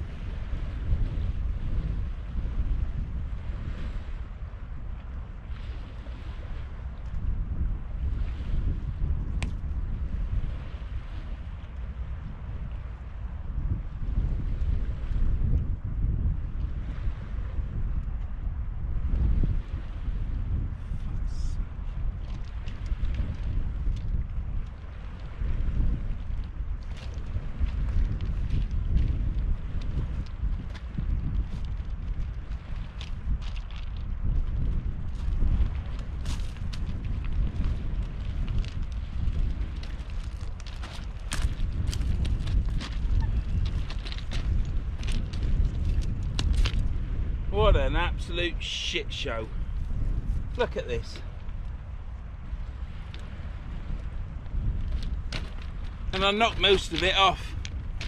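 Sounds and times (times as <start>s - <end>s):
wind buffeting microphone: 0.0s - 58.0s
footsteps on shingle: 22.0s - 47.2s, 49.7s - 58.0s.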